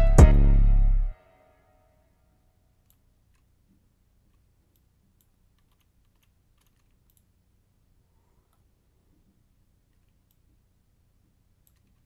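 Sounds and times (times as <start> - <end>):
computer keyboard and mouse clicks: 4.3 - 7.3, 11.6 - 12.0.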